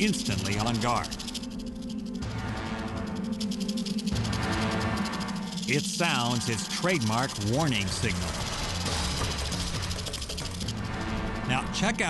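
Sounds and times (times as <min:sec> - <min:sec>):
low background music: 0:00.0 - 0:12.0
rattlesnake tail rattling: 0:00.0 - 0:12.0.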